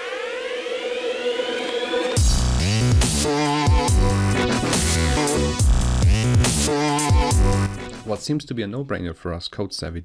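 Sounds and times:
synthesizer riser: 0.0s - 8.1s.

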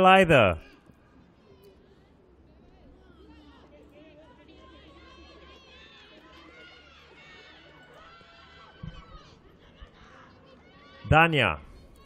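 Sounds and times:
players shouting and calling: 0.0s - 12.0s.

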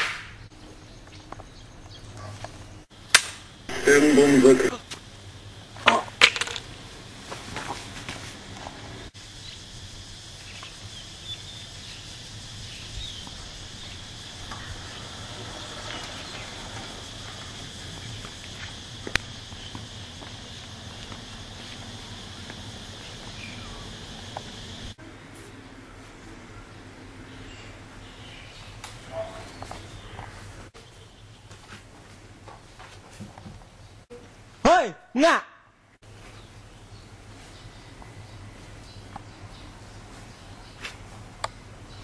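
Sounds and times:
faint high hum: 3.6s - 5.8s
loud vocal cry: 3.7s - 4.8s.

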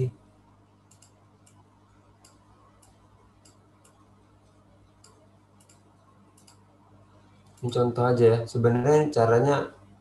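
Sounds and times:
low electrical hum: 0.0s - 10.0s
computer mouse clicks: 0.8s - 6.7s, 7.4s - 7.8s.

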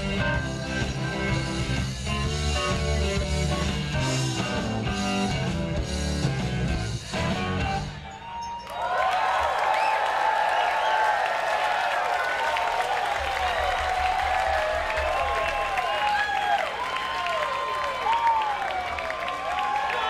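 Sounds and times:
shrill calls from crowd: 8.1s - 20.0s
crowd cheering and applauding: 8.5s - 20.0s.

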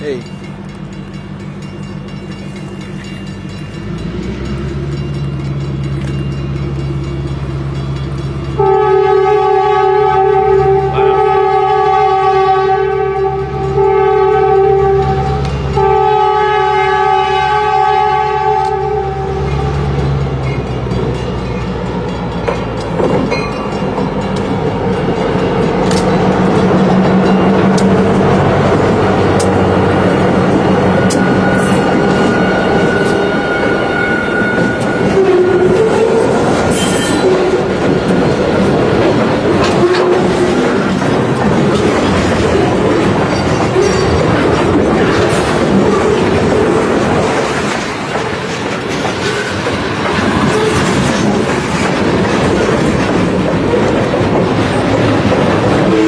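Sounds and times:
locomotives passing: 0.0s - 56.0s
train air horn blasts: 8.6s - 19.7s, 31.0s - 37.7s
wheels clicking over rail joints: 19.4s - 32.3s, 34.4s - 56.0s.

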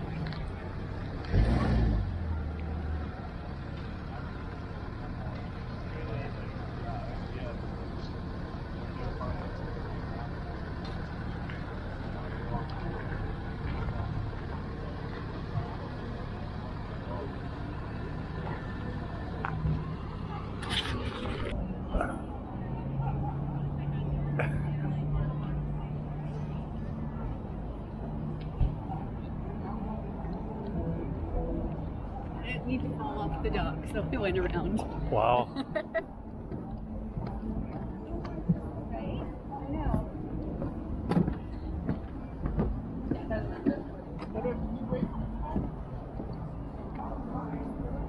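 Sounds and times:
outdoor noise: 0.0s - 48.0s
truck engine running: 0.0s - 48.0s.

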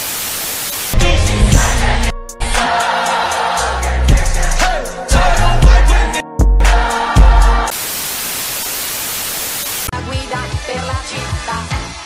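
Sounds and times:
white noise static hiss: 0.0s - 1.0s, 7.7s - 9.9s.

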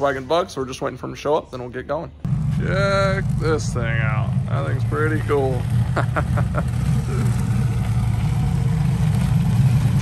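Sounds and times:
deep car engine rumble: 2.2s - 10.0s.

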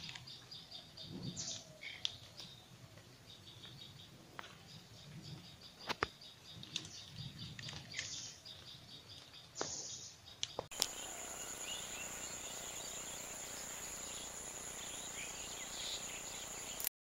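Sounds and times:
faint bird chirps: 0.0s - 16.9s
high-pitched insect drone: 10.7s - 16.9s.

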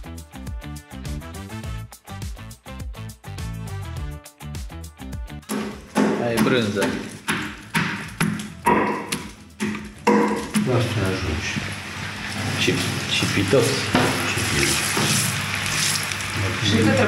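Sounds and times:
sharp knocks: 5.5s - 10.8s
banana slices sizzling in oil: 10.3s - 17.0s.

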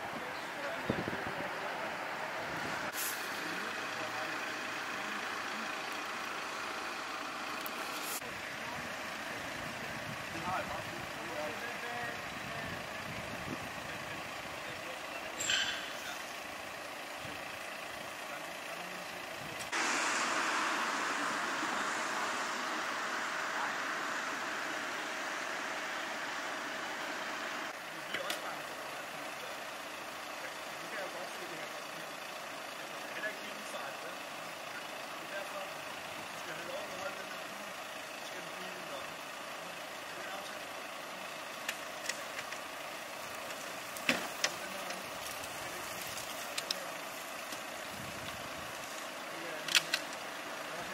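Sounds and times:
vehicles idling: 0.0s - 50.9s
indistinct voices: 18.5s - 29.5s.

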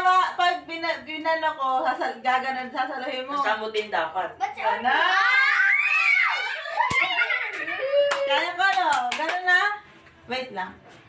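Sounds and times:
children squealing: 5.0s - 8.2s
hand claps: 6.8s - 9.6s.

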